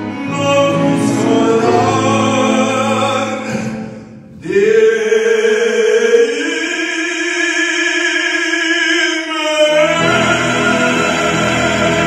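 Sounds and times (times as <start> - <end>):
piano: 0.0 - 7.6, 8.6 - 12.0
man singing operatic note: 0.0 - 12.0
strings: 9.7 - 12.0.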